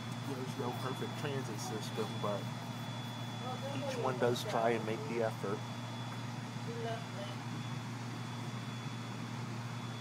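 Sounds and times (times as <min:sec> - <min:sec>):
thin high whine: 0:00.0 - 0:10.0.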